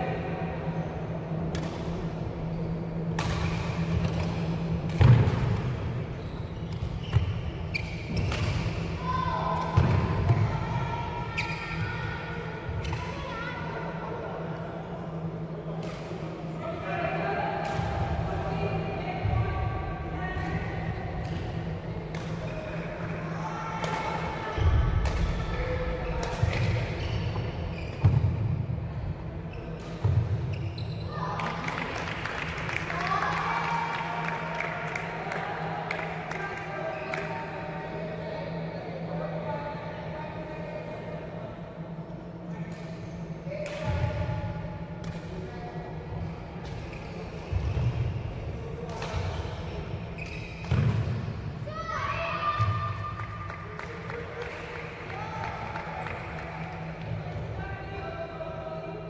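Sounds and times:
steady low hum: 0.0s - 30.8s.

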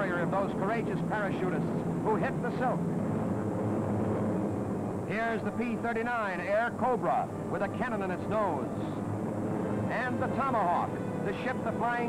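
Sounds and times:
propeller aircraft engines droning: 0.0s - 12.0s.

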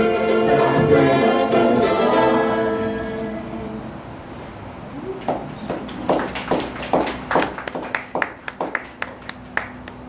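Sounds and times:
small audience clapping: 5.2s - 10.0s.

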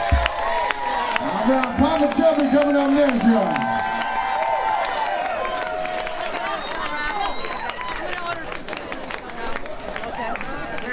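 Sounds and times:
crowd talking: 0.0s - 10.9s
scattered claps: 0.0s - 10.9s.

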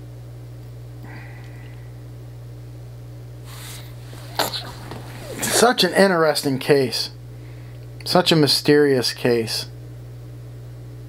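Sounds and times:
low electrical hum: 0.0s - 11.0s
man's sharp burst of breath: 3.5s - 6.0s.

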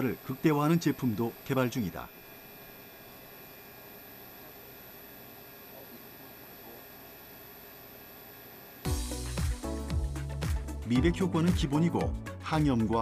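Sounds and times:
room tone hum and hiss: 0.0s - 8.9s.

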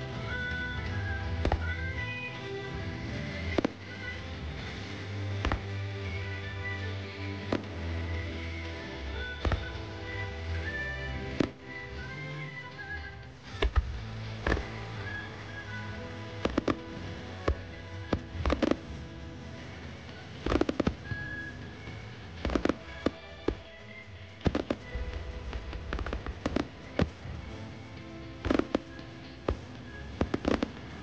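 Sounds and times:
fireworks bangs: 0.0s - 2.1s, 2.8s - 6.6s, 7.4s - 11.7s, 13.5s - 31.0s
background music: 0.0s - 31.0s.

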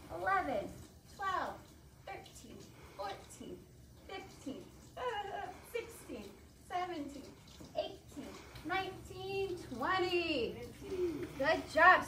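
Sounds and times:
woman counting aloud: 0.0s - 12.0s.

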